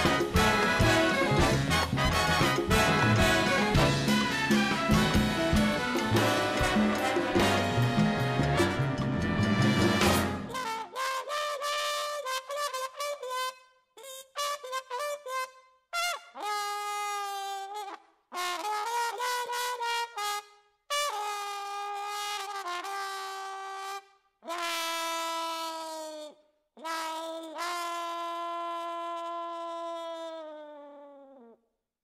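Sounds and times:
solo brass instrument: 0.0s - 31.0s.

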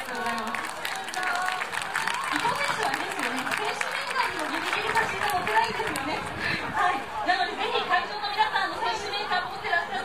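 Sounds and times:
chatter: 0.0s - 10.0s
woman talking: 0.0s - 10.0s.

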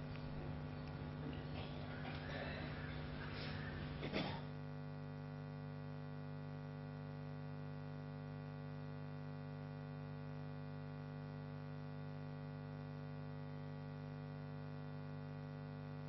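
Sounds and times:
electrical mains hum: 0.0s - 16.0s.

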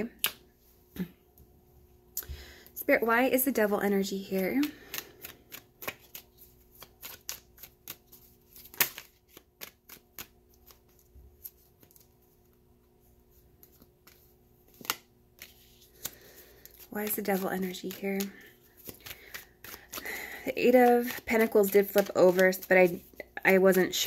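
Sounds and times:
cards being shuffled: 4.0s - 12.6s, 13.3s - 24.0s.

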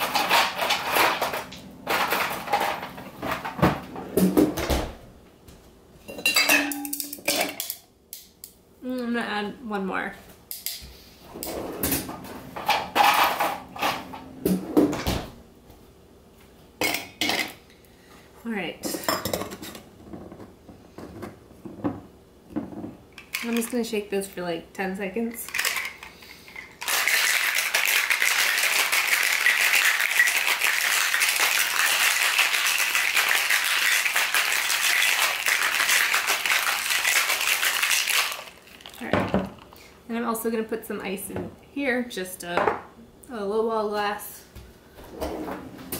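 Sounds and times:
ice cubes rattling in shaker: 25.5s - 39.7s.

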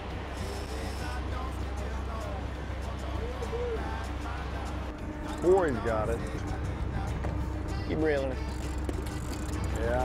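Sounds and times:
boat engine low rumble: 0.0s - 10.0s
wind and water hiss: 0.0s - 10.0s.

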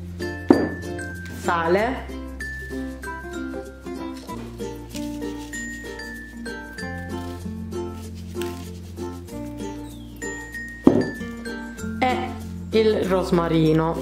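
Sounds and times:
bell-like melody over bass: 0.0s - 4.8s, 5.4s - 7.8s, 9.8s - 13.5s.

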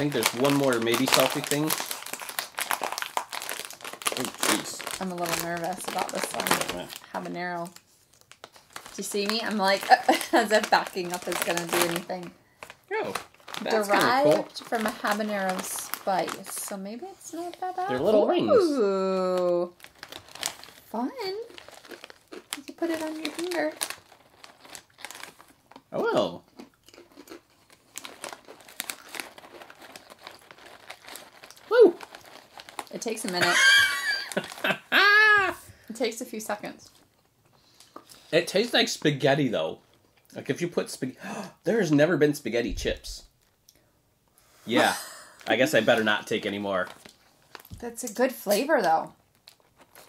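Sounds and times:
plastic bag crinkling: 0.0s - 18.0s, 19.2s - 34.8s, 44.8s - 50.0s.

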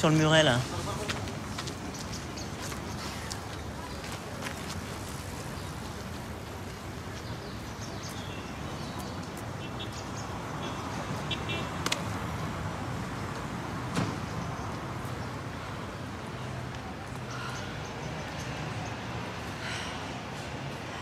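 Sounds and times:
traffic hum: 0.0s - 21.0s.

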